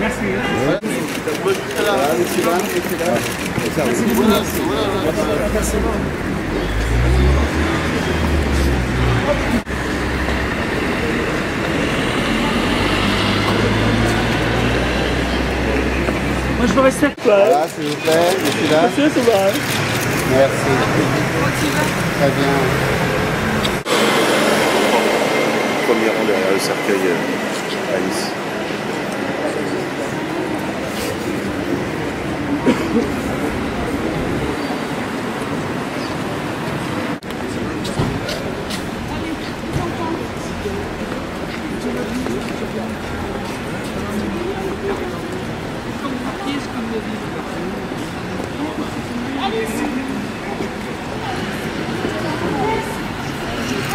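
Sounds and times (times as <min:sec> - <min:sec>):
bustle of people: 0:00.0 - 0:53.9
city street traffic: 0:00.0 - 0:53.9
crowd voices: 0:00.0 - 0:53.9.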